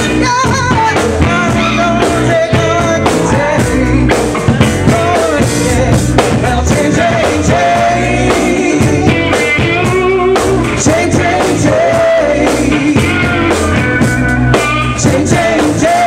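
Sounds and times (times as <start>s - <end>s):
women singing: 0.0s - 4.2s, 4.9s - 13.4s, 15.0s - 16.0s
bass: 0.0s - 16.0s
drum kit: 0.0s - 16.0s
electric guitar: 0.0s - 16.0s.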